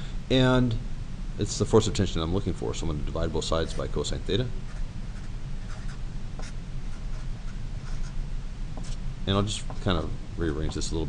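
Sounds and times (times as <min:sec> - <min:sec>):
marker scratching on paper: 0:04.7 - 0:08.2, 0:08.8 - 0:09.0.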